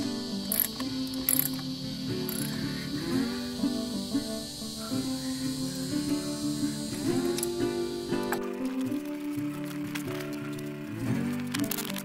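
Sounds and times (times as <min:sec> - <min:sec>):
background music: 0:00.0 - 0:12.0
ratchet wrench clicking: 0:00.4 - 0:02.6.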